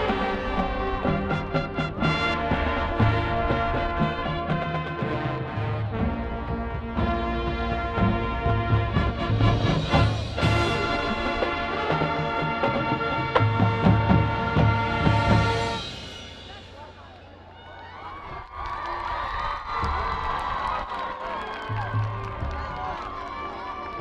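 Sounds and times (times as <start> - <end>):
marching band drums: 0.0 - 17.3
marching band brass chords: 0.0 - 17.5, 21.6 - 24.0.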